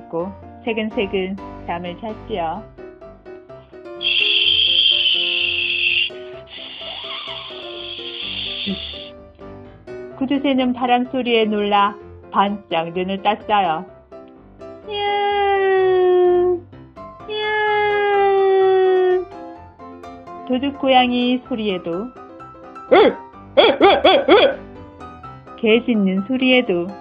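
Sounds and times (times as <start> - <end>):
soft background music: 0.0 - 27.0
high-pitched steady tone: 4.0 - 9.1
cat meowing: 14.9 - 16.5, 17.3 - 19.2.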